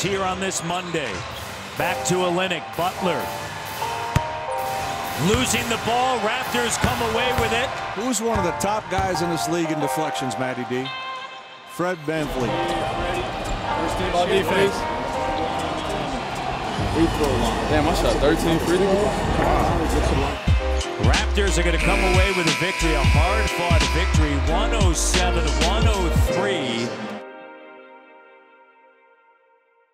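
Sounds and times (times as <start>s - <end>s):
faint crowd: 0.0s - 27.2s
background music held notes: 1.8s - 29.8s
arena noise: 12.1s - 25.9s.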